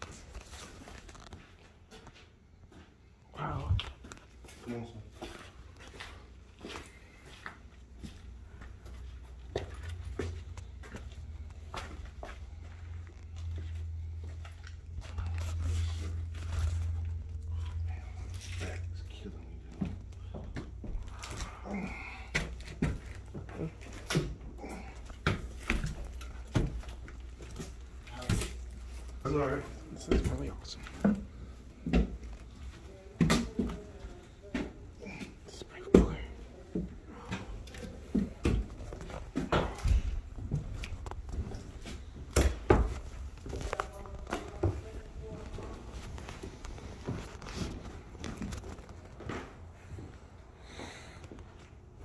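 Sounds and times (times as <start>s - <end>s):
footsteps on concrete: 3.8s - 16.0s.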